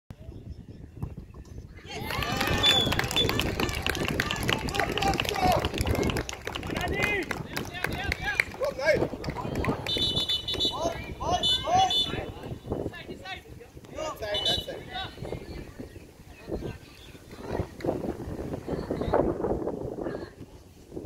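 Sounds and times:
many voices talking and calling out: 0:01.6 - 0:21.0.

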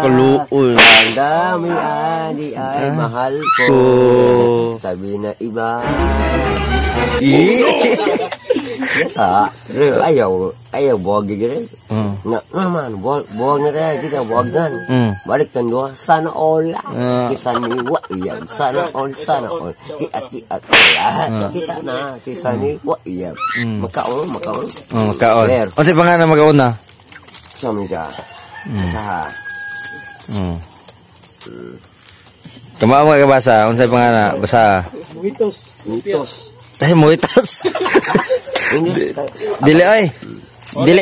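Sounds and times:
crickets chirping: 0:00.0 - 0:41.0.

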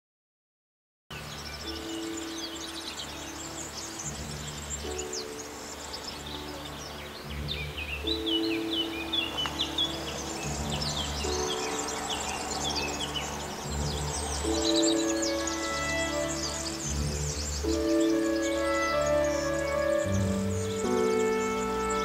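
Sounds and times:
birds chirping and trilling: 0:01.1 - 0:22.0
slow sustained chord music: 0:01.1 - 0:22.0.

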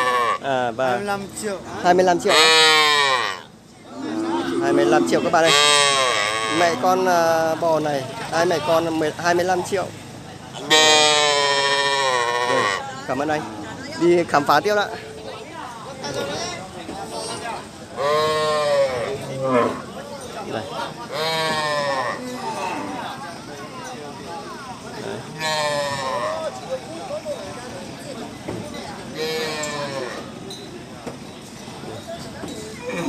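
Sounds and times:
background talk: 0:00.0 - 0:33.0
calf bawling: 0:02.2 - 0:06.9, 0:10.7 - 0:12.9, 0:18.0 - 0:19.9, 0:21.0 - 0:23.0, 0:25.4 - 0:26.5.

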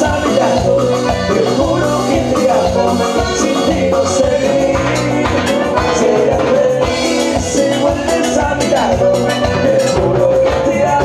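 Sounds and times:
live band with accordion: 0:00.0 - 0:11.0.

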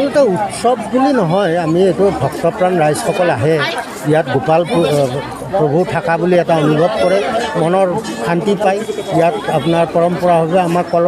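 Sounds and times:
man talking into a microphone: 0:00.0 - 0:11.0
people chattering: 0:00.0 - 0:11.0.

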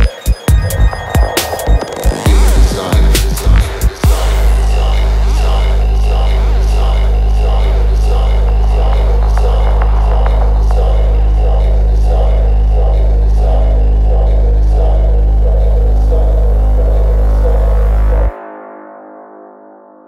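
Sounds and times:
deep bass drone: 0:00.0 - 0:18.4.

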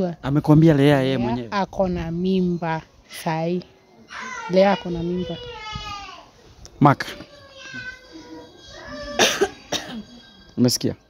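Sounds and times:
woman coughing: 0:09.2 - 0:10.2.

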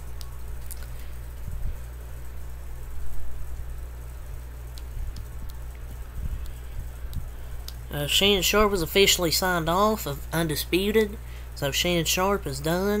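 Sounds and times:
room tone hum and hiss: 0:00.0 - 0:13.0.

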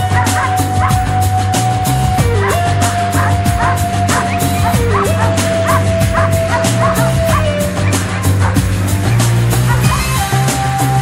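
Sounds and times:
dog barking in yips: 0:00.0 - 0:01.1, 0:02.3 - 0:08.6, 0:09.7 - 0:10.2
music with fast beat: 0:00.0 - 0:11.0.

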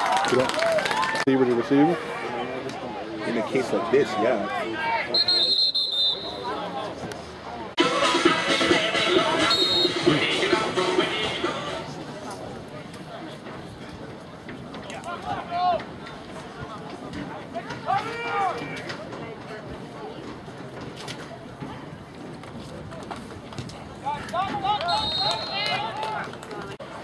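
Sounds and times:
open-air background noise: 0:00.0 - 0:27.0
referee's whistle: 0:05.1 - 0:06.5, 0:09.4 - 0:10.2, 0:24.8 - 0:25.8.

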